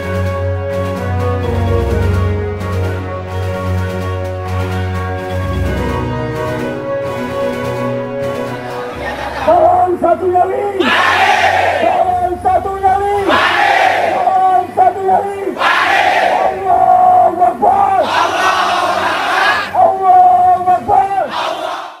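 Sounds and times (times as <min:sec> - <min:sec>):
crowd chanting call and response: 0:08.5 - 0:22.0
massed shouting surges: 0:10.8 - 0:12.2, 0:13.2 - 0:19.8, 0:21.2 - 0:22.0.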